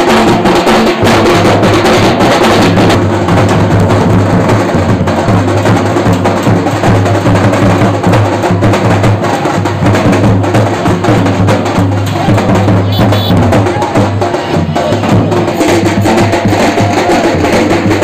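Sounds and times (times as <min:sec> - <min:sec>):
fast dense drumming: 0:00.0 - 0:18.0.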